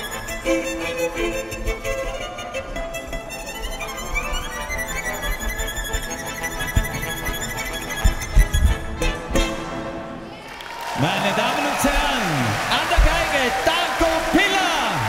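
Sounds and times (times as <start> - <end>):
solo violin: 0.0 - 10.3
loud low drum beats: 11.9 - 13.7.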